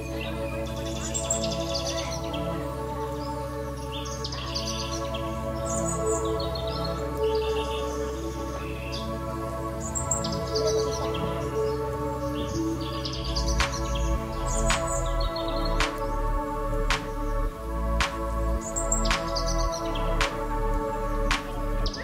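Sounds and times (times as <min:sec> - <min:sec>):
calm music with held chords: 0:00.0 - 0:22.0.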